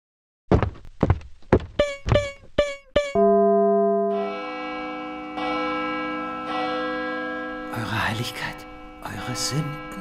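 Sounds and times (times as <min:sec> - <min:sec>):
bell-like music tones: 0:03.2 - 0:10.0.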